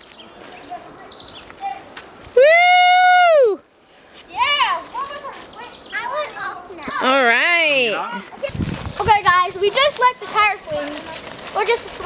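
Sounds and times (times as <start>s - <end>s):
children playing: 4.2s - 12.0s
child shouting: 4.3s - 7.0s.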